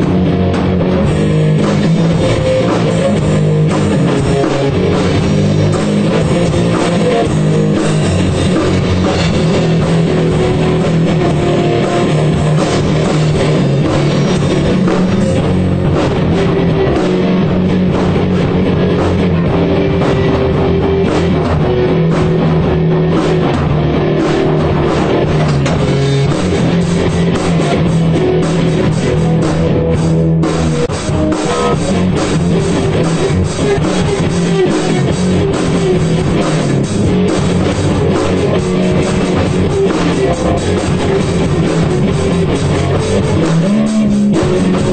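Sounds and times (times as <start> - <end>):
punk rock band playing: 0.0 - 44.9.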